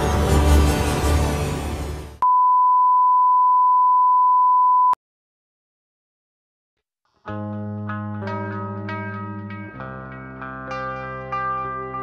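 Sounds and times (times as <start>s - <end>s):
steady electronic beep: 2.2s - 5.0s.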